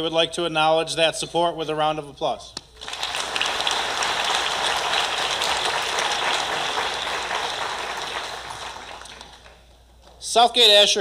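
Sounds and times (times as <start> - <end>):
audience applause: 2.8 - 9.6.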